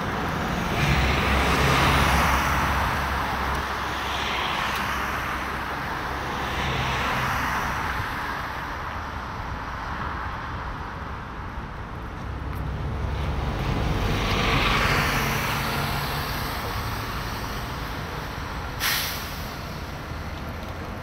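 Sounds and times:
steady traffic noise: 0:00.0 - 0:21.0.

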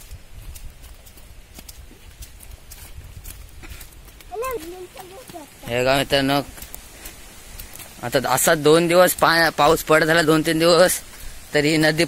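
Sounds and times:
footsteps crunching on dry leaves: 0:00.0 - 0:12.0.

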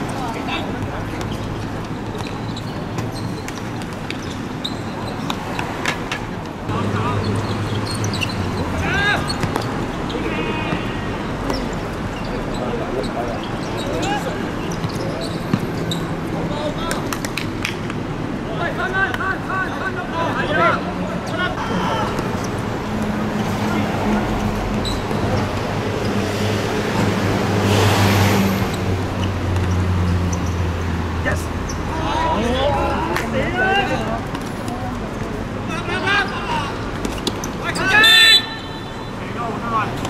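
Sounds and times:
city road traffic rumble: 0:00.0 - 0:40.0
players calling out: 0:00.0 - 0:40.0
vehicle passing: 0:20.4 - 0:37.0.

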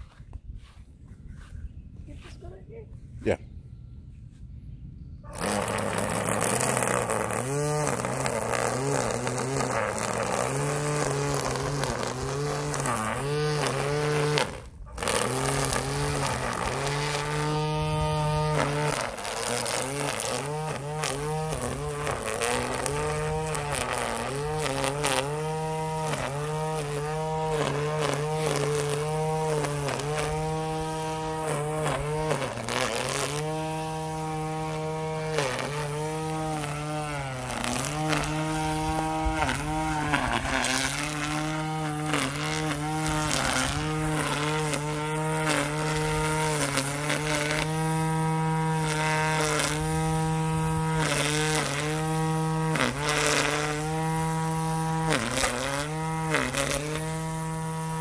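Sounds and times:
string trimmer whining: 0:05.2 - 0:58.0.

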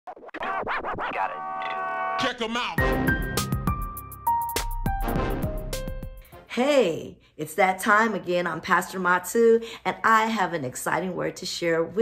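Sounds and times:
turntable scratches: 0:00.1 - 0:02.8
intro music chord: 0:02.8 - 0:06.3.

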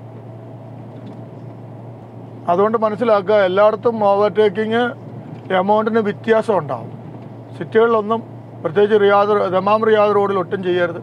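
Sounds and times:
constant low hum: 0:00.0 - 0:11.0
vehicle engine and road noise: 0:00.0 - 0:11.0.

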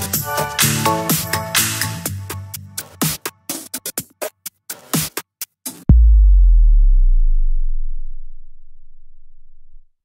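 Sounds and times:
deep synth bass note: 0:05.9 - 0:09.9.

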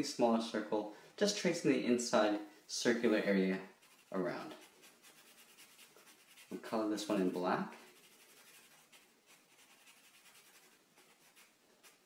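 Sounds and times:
marker scratching on paper: 0:03.7 - 0:06.6, 0:07.9 - 0:12.0.

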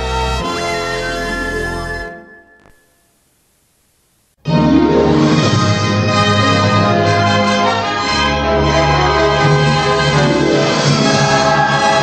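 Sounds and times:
orchestral film music: 0:04.5 - 0:12.0
choir singing: 0:04.7 - 0:12.0.

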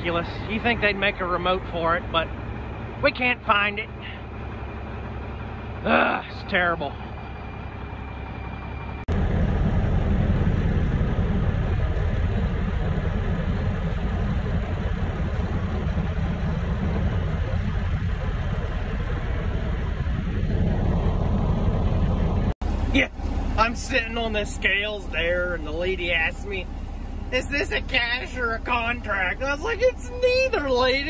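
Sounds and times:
rising whine: 0:00.0 - 0:31.0
truck diesel engine rumble: 0:00.0 - 0:31.0.

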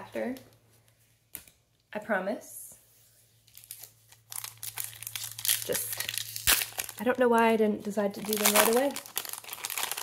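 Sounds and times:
foil wrapper crinkling and tearing: 0:03.5 - 0:07.5, 0:08.1 - 0:10.0
sharp crack of foil: 0:03.6 - 0:07.0.

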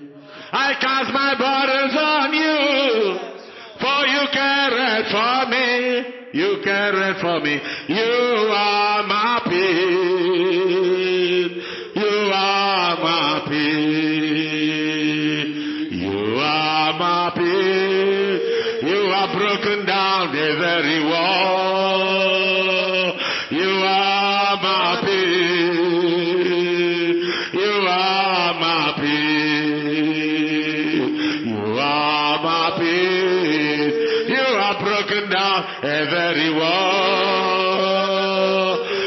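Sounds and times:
voice chanting long notes: 0:07.9 - 0:39.0.

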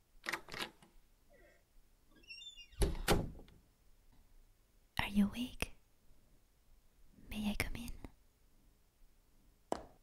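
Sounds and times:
woman whispering: 0:05.0 - 0:05.8, 0:07.2 - 0:08.2.

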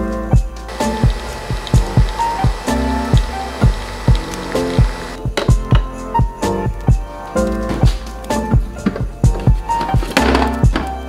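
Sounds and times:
background music with steady beat: 0:00.0 - 0:11.0
coffee machine whirring hiss: 0:00.7 - 0:05.2.

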